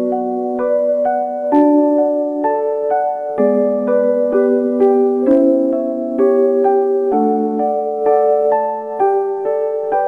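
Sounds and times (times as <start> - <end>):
soft piano lullaby: 0.0 - 10.0.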